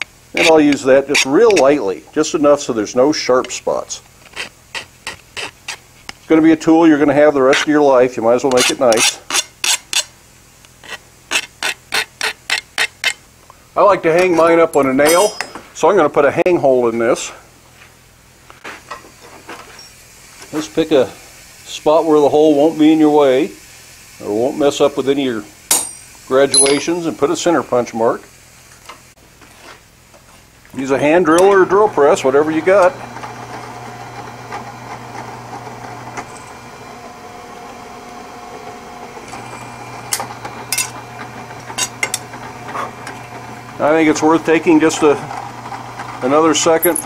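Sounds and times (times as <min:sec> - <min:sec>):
metal tools clicking: 0:14.7 - 0:15.6, 0:25.7 - 0:27.0, 0:46.8 - 0:47.0
drill press humming: 0:31.0 - 0:47.0.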